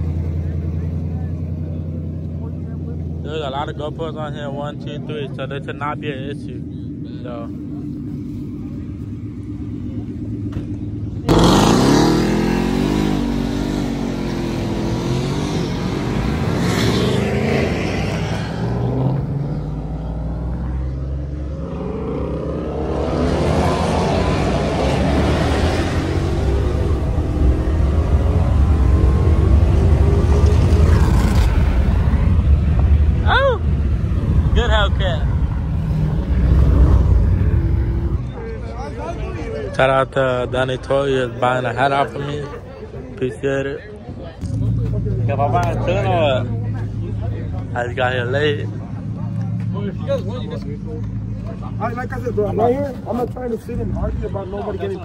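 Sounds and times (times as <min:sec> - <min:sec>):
car engine idling and revving: 0:00.0 - 0:55.0.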